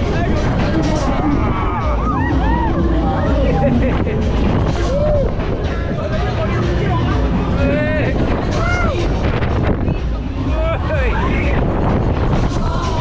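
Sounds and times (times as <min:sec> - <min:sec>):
rush of wind and ride noise: 0:00.0 - 0:13.0
riders screaming and whooping: 0:01.1 - 0:03.7, 0:04.6 - 0:05.5.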